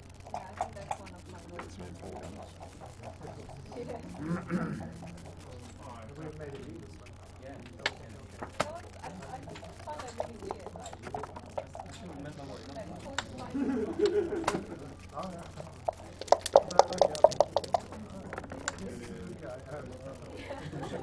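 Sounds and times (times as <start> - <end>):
dice rattling in a cup: 0.2 - 6.2, 7.7 - 19.4
dice clicking on a board: 7.7 - 19.1.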